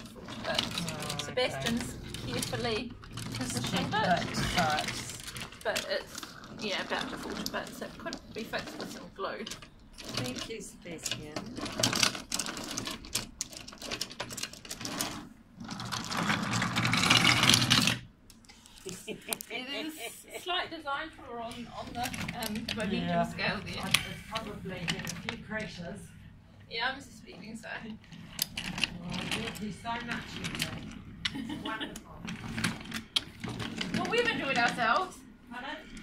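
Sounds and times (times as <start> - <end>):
toy train wheels rattling: 0.0 - 15.1.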